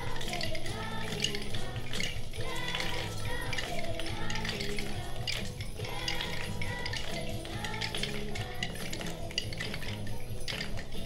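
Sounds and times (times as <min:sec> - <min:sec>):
children's choir singing: 0:00.0 - 0:11.0
hand percussion rattling and jingling: 0:00.0 - 0:11.0
held accompaniment: 0:00.0 - 0:11.0.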